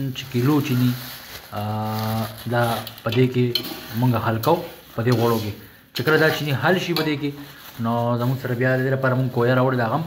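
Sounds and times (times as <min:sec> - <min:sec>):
man speaking: 0:00.0 - 0:10.0
metal spatula stirring in pot: 0:02.3 - 0:07.6.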